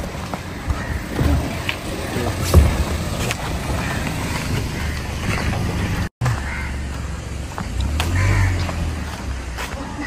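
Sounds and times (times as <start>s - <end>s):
car driving slowly past: 0.0s - 10.0s
footsteps on pavement: 0.0s - 10.0s.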